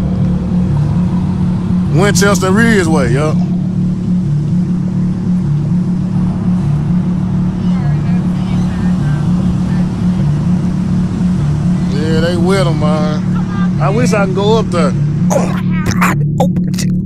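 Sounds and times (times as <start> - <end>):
car engine drone: 0.0 - 17.0
road noise: 0.0 - 17.0.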